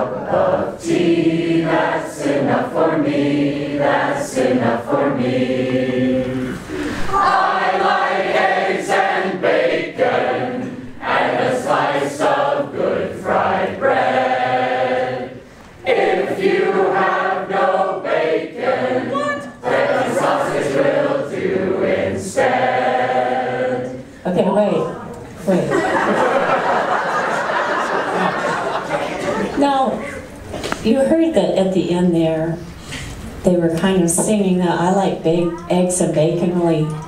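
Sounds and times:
group singing a cappella round: 0.0 - 24.5, 26.0 - 29.6.

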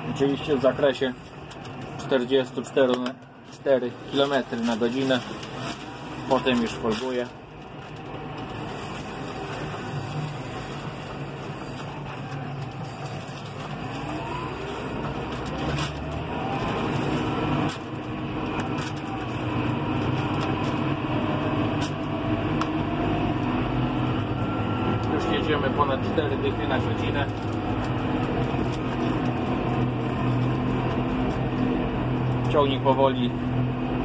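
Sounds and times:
tractor diesel engine accelerating: 0.0 - 34.0.

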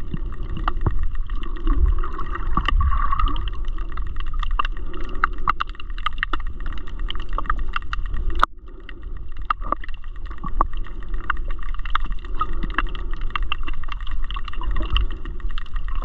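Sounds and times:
underwater clicks and crackles: 0.0 - 16.0
underwater low rumble: 0.0 - 16.0.

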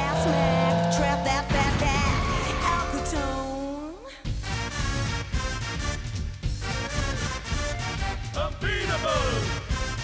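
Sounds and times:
cartoon car engine revving: 0.0 - 4.0
upbeat theme music: 0.0 - 10.0.

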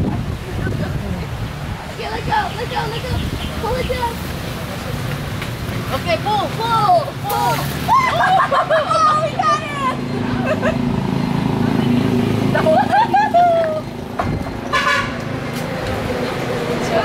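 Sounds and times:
motor vehicle passing: 0.0 - 17.0
high voices exclaiming: 6.3 - 10.9
short horn toot: 14.7 - 15.2.

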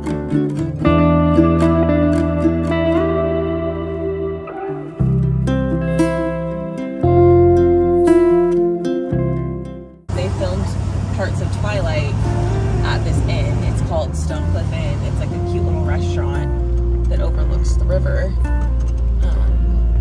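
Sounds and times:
acoustic guitar music: 0.0 - 20.0
woman talking: 10.1 - 18.4
car engine running: 10.1 - 20.0
wind and road noise: 10.1 - 20.0.

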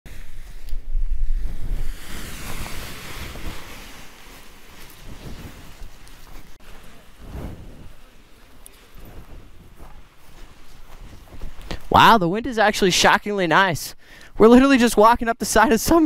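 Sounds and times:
wind buffeting microphone: 0.1 - 11.9.

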